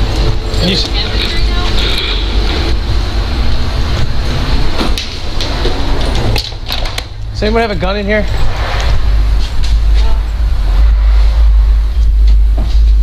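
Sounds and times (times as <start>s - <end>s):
faint voices: 0.0s - 3.4s
camera microphone rumble and rustle: 0.0s - 13.0s.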